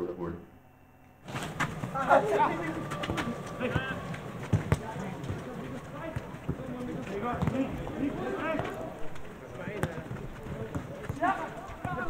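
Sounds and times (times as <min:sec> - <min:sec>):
football being kicked: 0:01.3 - 0:08.8
footballers shouting: 0:01.3 - 0:12.0.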